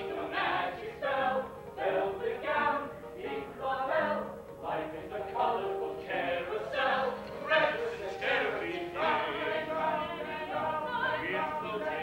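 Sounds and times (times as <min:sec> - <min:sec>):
people singing on stage: 0:00.0 - 0:12.0.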